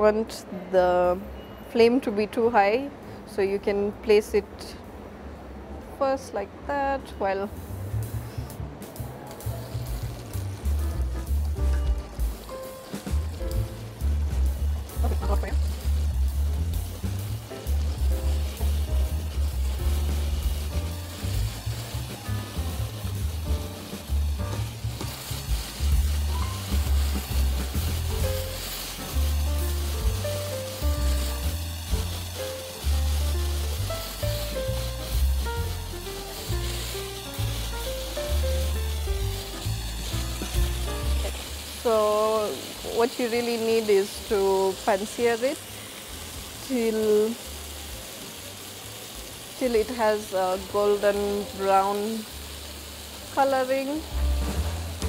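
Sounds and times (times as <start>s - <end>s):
chicken sizzling in frying pan: 7.6s - 55.0s.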